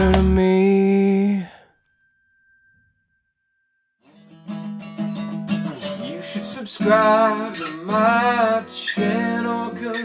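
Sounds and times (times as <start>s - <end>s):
man singing held note: 0.0s - 1.7s.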